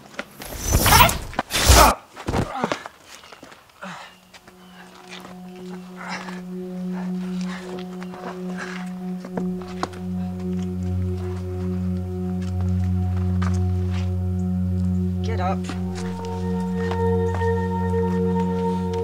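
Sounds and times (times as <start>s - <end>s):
held chord drone: 4.4s - 19.0s
deep bass tone: 9.0s - 19.0s.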